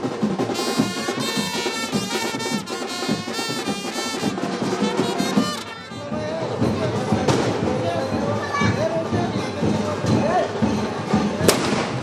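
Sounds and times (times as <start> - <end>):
firework crack: 11.5 - 12.0.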